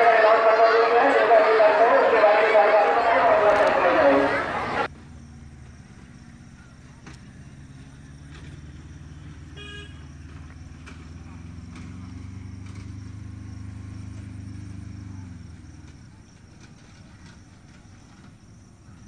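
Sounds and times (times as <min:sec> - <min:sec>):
vehicle engine humming: 0:00.0 - 0:19.0
short horn toot: 0:09.5 - 0:10.1.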